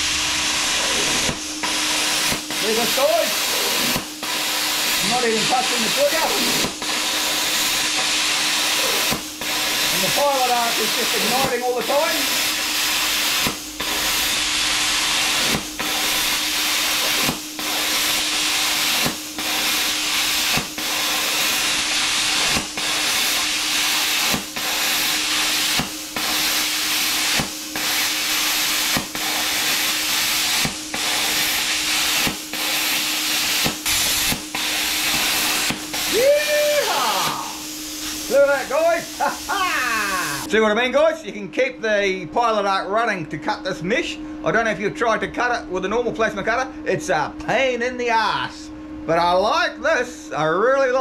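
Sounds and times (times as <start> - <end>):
plasma cutter hissing: 0.0 - 40.5.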